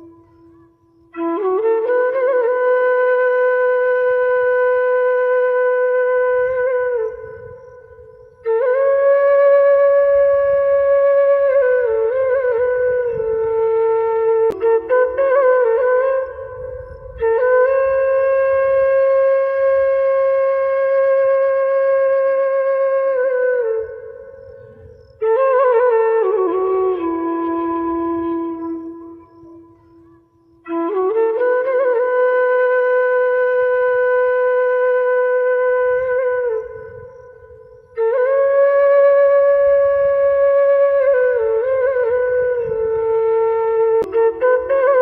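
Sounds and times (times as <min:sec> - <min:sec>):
flute-like wind instrument note: 0:00.0 - 0:45.0.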